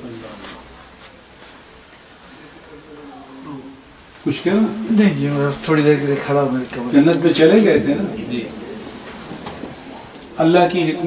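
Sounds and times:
lecturer speaking: 2.4 - 11.0.

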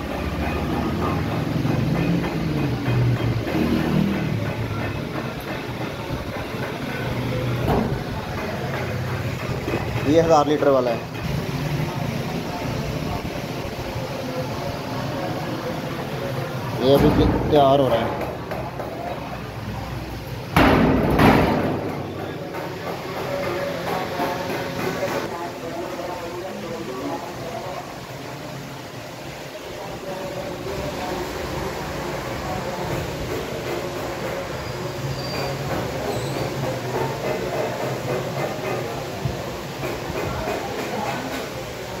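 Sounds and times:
indistinct background voices: 0.0 - 20.3, 21.6 - 42.0
workshop noise: 0.0 - 42.0
loud bump: 20.5 - 22.2.

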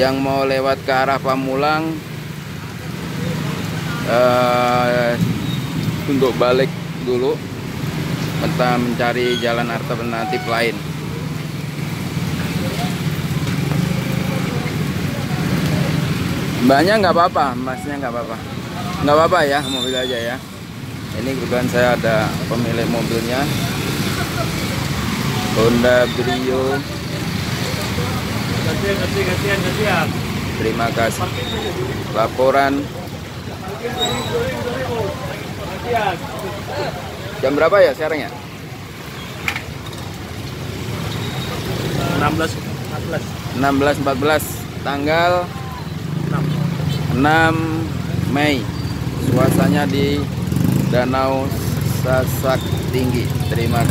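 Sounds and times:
small motorbike engines rumbling: 0.0 - 53.9.

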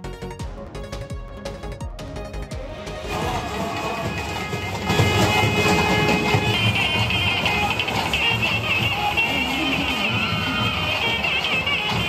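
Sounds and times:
procession drums: 2.6 - 12.0
reed pipes playing held notes: 2.6 - 12.0.

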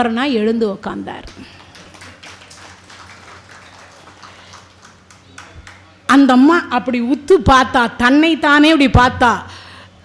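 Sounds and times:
low electrical hum: 0.0 - 10.0
faint room noise: 0.5 - 7.4.

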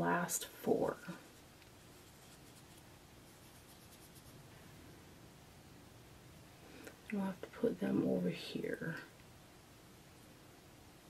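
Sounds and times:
fingertips rubbing eyeshadow: 1.1 - 4.4.

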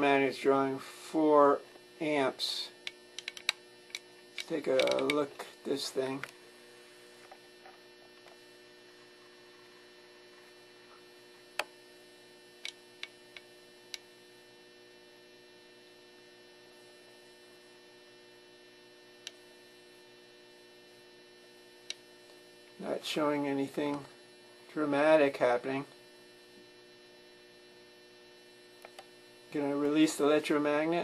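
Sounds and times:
faint electrical hum: 0.0 - 31.0
sharp ticks: 2.9 - 5.2.

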